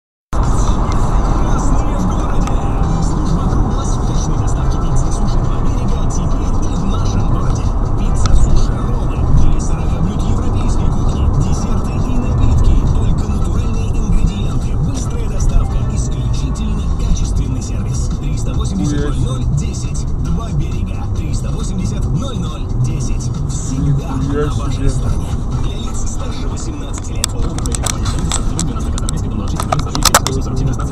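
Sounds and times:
car road and engine noise: 0:00.3 - 0:30.9
car radio music and voices: 0:00.4 - 0:30.9.

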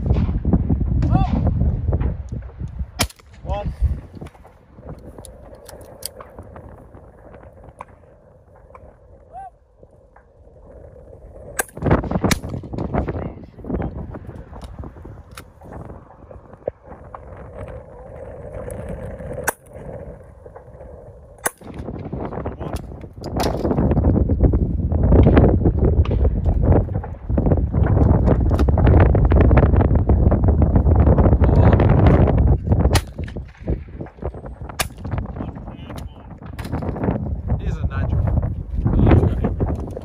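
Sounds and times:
wind buffeting microphone: 0:00.0 - 0:40.0
shotgun shots: 0:03.0 - 0:03.5, 0:32.9 - 0:33.8.

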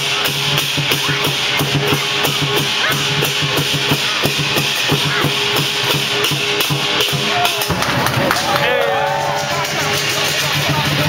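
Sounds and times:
big drum beating: 0:00.0 - 0:11.0
clashing cymbals: 0:00.0 - 0:11.0.

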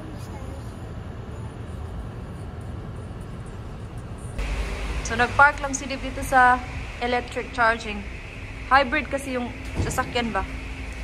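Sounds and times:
loud hiss with deeper rumble: 0:04.4 - 0:11.0.

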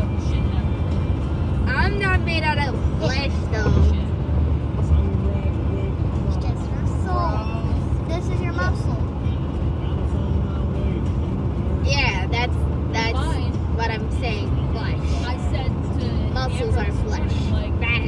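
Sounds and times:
car road rumble: 0:00.0 - 0:18.0
person speaking: 0:13.0 - 0:13.5.

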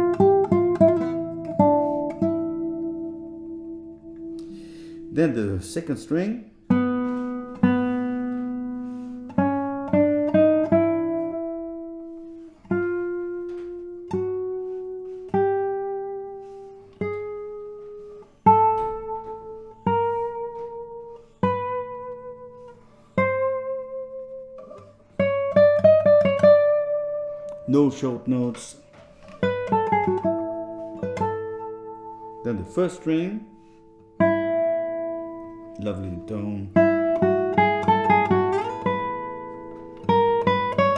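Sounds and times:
classical guitar single notes: 0:00.0 - 0:40.9.

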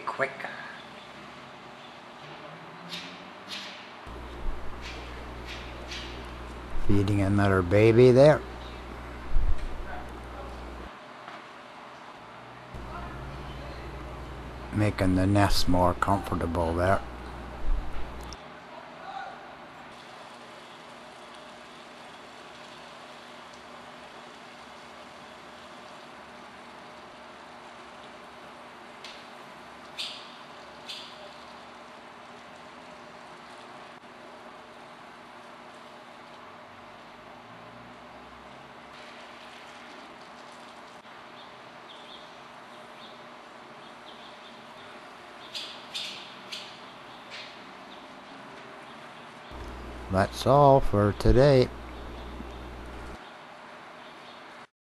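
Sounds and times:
steady low hiss: 0:04.1 - 0:11.0, 0:12.8 - 0:18.4, 0:49.5 - 0:53.2
swallows chirping: 0:51.8 - 0:53.2.

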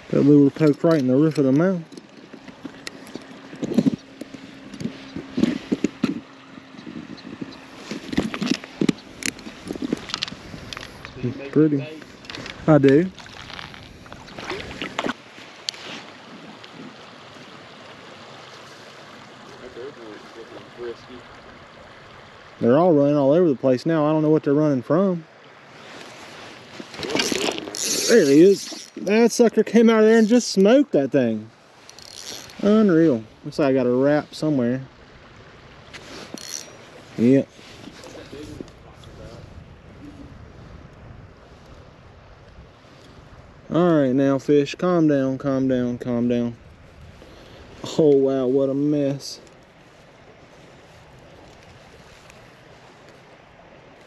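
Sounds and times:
handling clicks and rustles: 0:00.3 - 0:16.9, 0:25.9 - 0:30.4
fishing reel cranking whir: 0:27.0 - 0:29.0, 0:31.9 - 0:32.6, 0:36.3 - 0:36.8.

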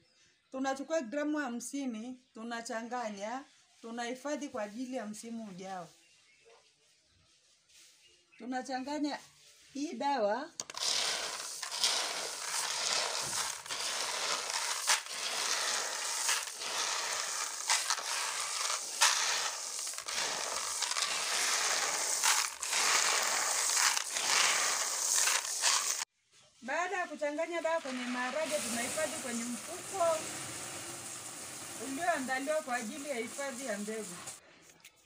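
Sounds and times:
dry beans rattling in plastic basin: 0:10.6 - 0:26.1, 0:27.4 - 0:34.4.

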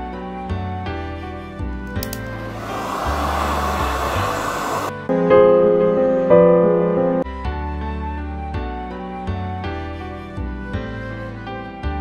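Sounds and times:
soft background music: 0:00.0 - 0:12.0
clicks: 0:01.9 - 0:02.4
rushing hiss of air: 0:02.3 - 0:05.0.

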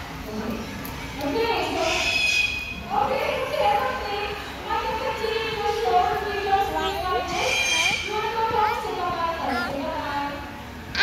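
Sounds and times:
parrot calling: 0:01.8 - 0:02.8, 0:07.2 - 0:08.2
woman's voice: 0:02.9 - 0:11.0.

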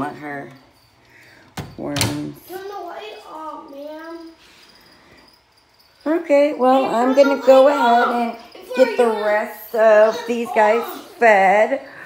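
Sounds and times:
high-pitched insect trill: 0:02.5 - 0:11.2.

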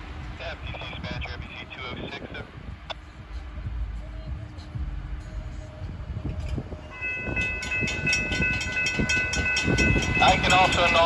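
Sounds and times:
low rail rumble: 0:00.0 - 0:11.0
high-pitched crossing bell ringing: 0:06.8 - 0:11.0.

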